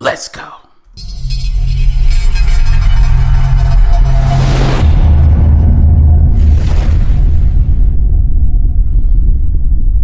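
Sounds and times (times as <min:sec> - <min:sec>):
electronic intro music: 0:01.0 - 0:07.3.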